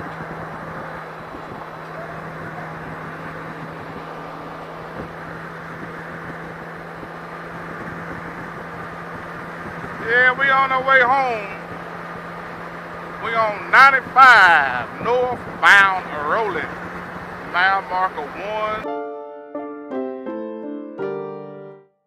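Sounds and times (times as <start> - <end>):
motorcycle engine hum: 0.0 - 18.8
wind and road noise: 0.0 - 18.8.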